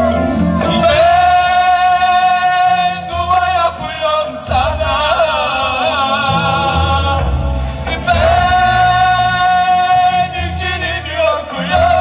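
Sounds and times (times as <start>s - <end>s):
low musical accompaniment: 0.0s - 12.0s
man singing into a microphone: 0.0s - 12.0s.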